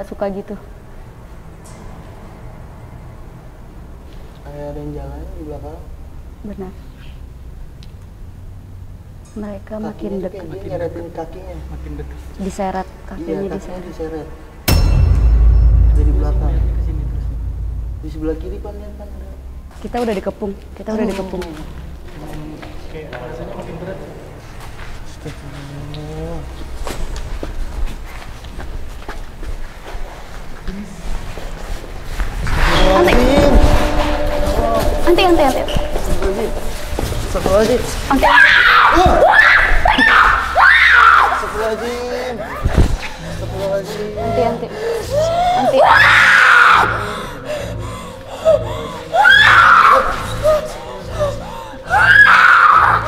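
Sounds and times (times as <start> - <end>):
low pulsing beat: 14.7 - 20.4, 33.1 - 38.3
young woman screaming: 38.2 - 41.4, 45.1 - 47.2, 49.1 - 50.4, 51.9 - 53.0.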